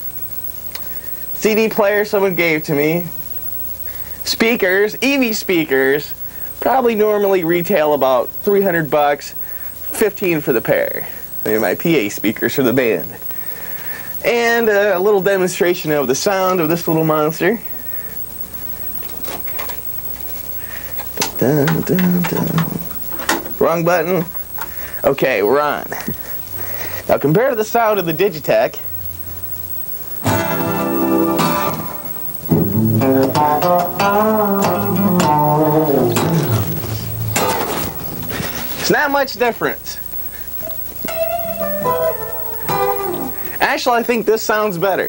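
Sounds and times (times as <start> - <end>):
amplifier hum and whine: 0.0 - 45.0
electric guitar notes ringing: 30.2 - 38.8, 40.6 - 43.6.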